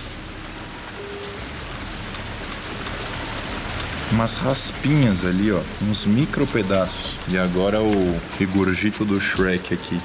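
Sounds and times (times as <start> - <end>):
liquid trickling and splashing: 0.0 - 10.0.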